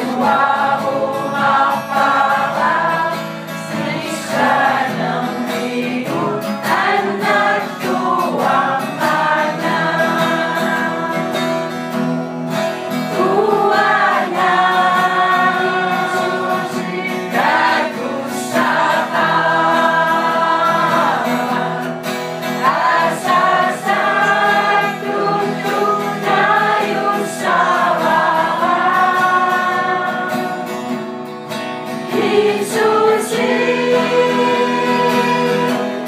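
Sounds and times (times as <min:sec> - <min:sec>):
group singing a hymn-like song: 0:00.0 - 0:36.0
guitar accompaniment: 0:00.0 - 0:36.0.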